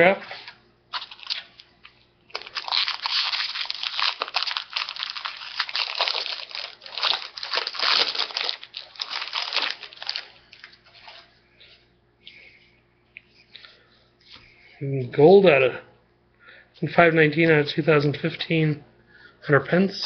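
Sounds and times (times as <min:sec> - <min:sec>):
foil wrapper tearing and crinkling: 0:00.9 - 0:01.7, 0:02.3 - 0:10.3.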